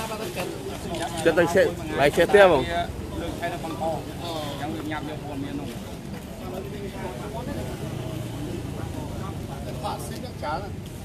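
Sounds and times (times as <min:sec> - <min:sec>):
low rumble of street traffic: 0:00.0 - 0:11.0
people talking: 0:00.0 - 0:11.0.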